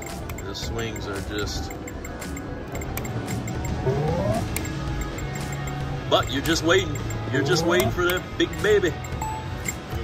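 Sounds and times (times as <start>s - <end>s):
video poker machine clicks: 0.0s - 5.8s
casino background music: 0.0s - 10.0s
short rising electronic tone: 3.6s - 4.6s.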